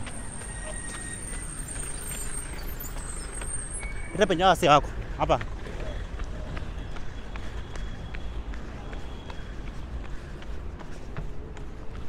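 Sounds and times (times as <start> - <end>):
low street traffic rumble: 0.0 - 12.0.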